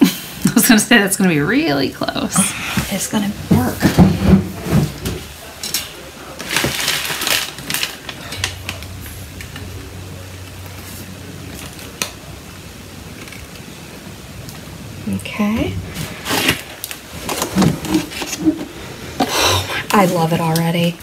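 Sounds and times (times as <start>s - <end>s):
low steady hum: 0.0s - 21.0s
wooden basket creaking and rustling: 15.6s - 20.2s.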